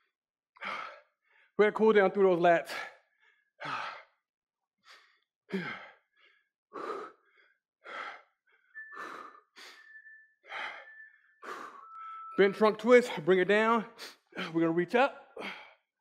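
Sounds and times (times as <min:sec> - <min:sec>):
man breathing hard: 0:00.6 - 0:01.6, 0:02.7 - 0:04.2, 0:04.8 - 0:12.2, 0:13.9 - 0:14.6, 0:15.2 - 0:15.9.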